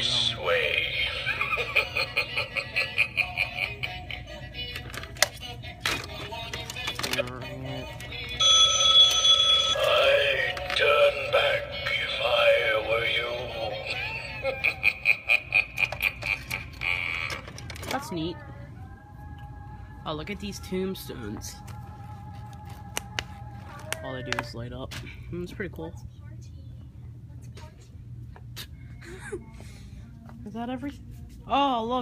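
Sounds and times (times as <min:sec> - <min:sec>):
electronic telephone ring tone: 0:08.4 - 0:10.6.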